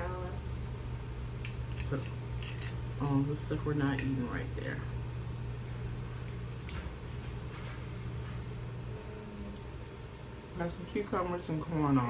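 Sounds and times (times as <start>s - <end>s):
low hum: 0.0s - 11.8s.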